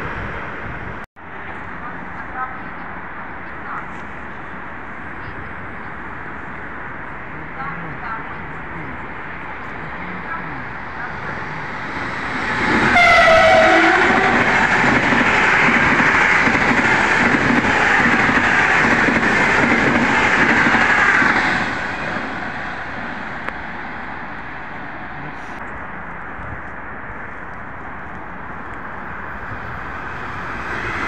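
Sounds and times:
high-speed train rushing past: 0.0 - 25.6, 26.4 - 31.0
train horn blast: 12.8 - 14.6.

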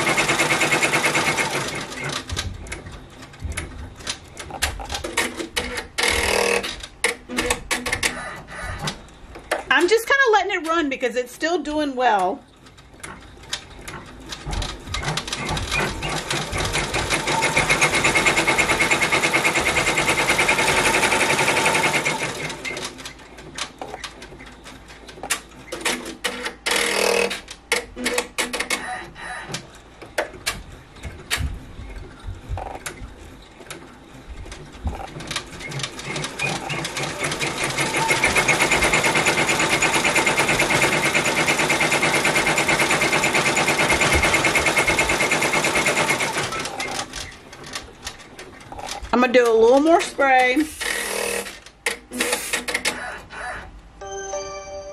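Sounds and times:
embroidery machine stitching rattle: 0.0 - 8.2, 12.5 - 28.8, 34.5 - 49.1, 49.8 - 53.0
irregular machine clicks and ticks: 12.2 - 31.4, 32.6 - 53.0.

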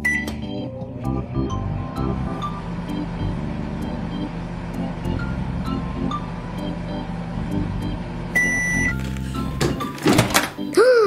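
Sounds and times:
microwave beep: 0.0 - 4.5, 5.1 - 7.2, 8.3 - 9.9
cheerful background music: 0.0 - 11.0.

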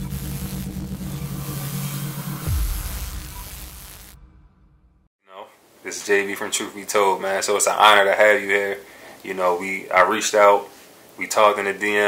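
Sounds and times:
rumbling hissing drone: 0.0 - 4.2
low hum swooping down: 0.0 - 4.9.

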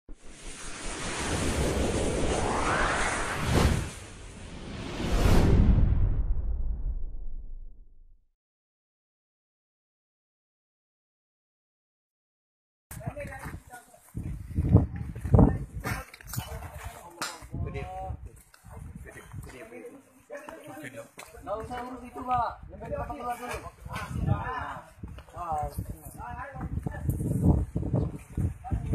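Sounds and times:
quick swoosh: 0.1 - 7.8
rush of noise with rising tone: 0.1 - 8.0
loud low rumbling bursts: 0.8 - 8.2.

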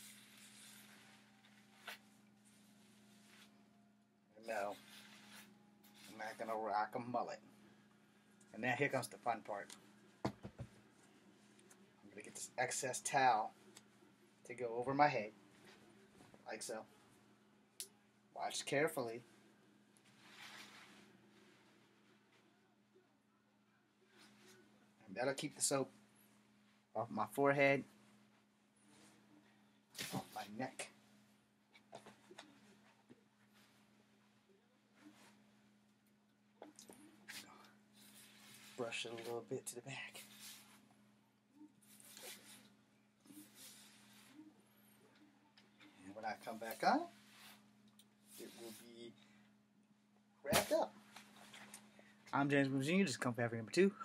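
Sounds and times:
low steady hum: 0.0 - 54.0.

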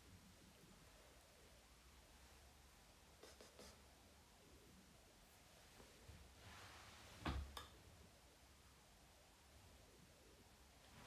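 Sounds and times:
faint scratchy rustles: 5.2 - 7.4, 10.8 - 11.0.

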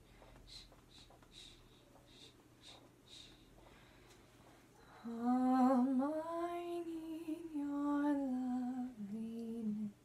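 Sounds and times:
woman humming a lullaby: 5.0 - 10.0.

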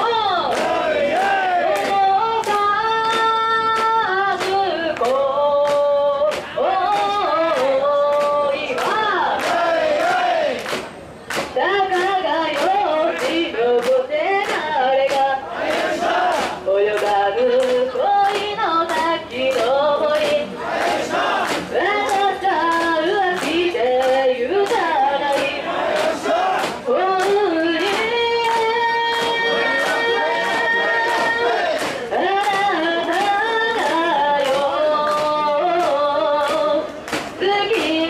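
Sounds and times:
crowd: 0.0 - 38.0
people chanting a call: 0.0 - 38.0
sharp clap: 0.0 - 38.0.

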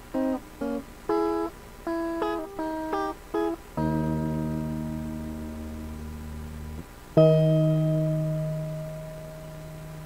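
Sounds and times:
faint steady hiss: 0.0 - 10.0
keyboard chord ringing out: 0.2 - 10.0.

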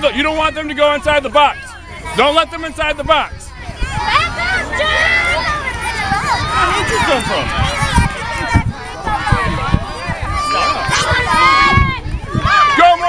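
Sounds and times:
dull low thumps: 0.0 - 12.8
children shouting and chattering: 0.0 - 13.0.

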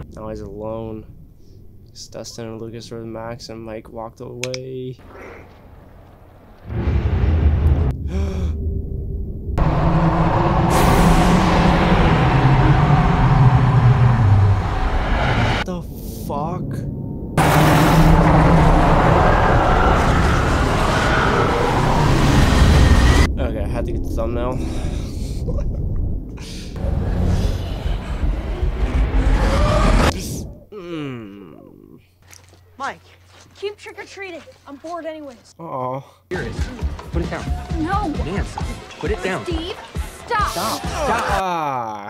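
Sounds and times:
tense music: 5.7 - 30.6
deep rumbling and booming effects: 6.6 - 30.7.

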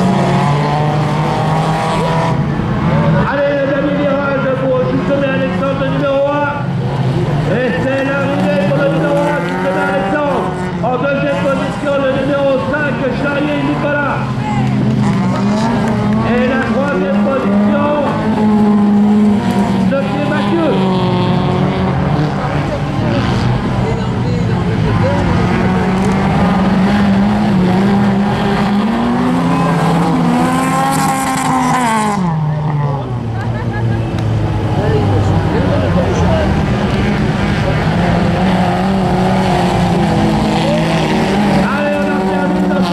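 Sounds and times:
race car engines revving: 0.0 - 42.9.

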